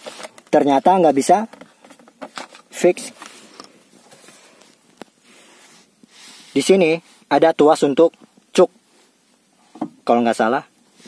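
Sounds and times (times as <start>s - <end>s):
handling clicks and rustling: 0.0s - 5.2s
faint hiss: 0.0s - 11.0s.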